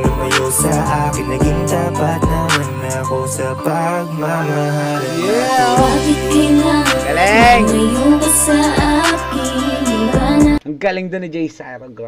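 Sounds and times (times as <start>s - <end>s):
rap love song: 0.0s - 10.6s
sustained chords: 1.0s - 10.4s.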